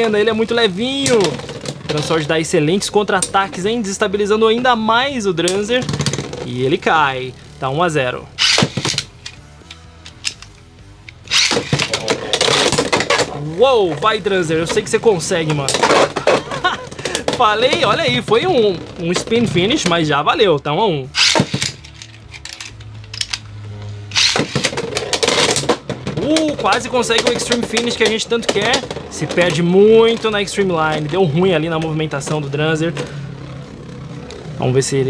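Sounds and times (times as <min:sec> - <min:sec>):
faint background music: 0:00.0 - 0:35.0
low hum: 0:00.0 - 0:35.0
spinning top launch: 0:08.4 - 0:09.4, 0:11.2 - 0:13.2, 0:21.2 - 0:21.8, 0:24.1 - 0:24.8
spinning tops clicking and scraping: 0:08.4 - 0:13.4, 0:21.1 - 0:25.7.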